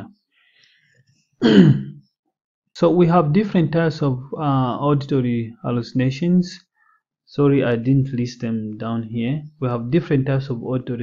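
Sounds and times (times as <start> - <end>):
person clearing throat: 1.4 - 2.0.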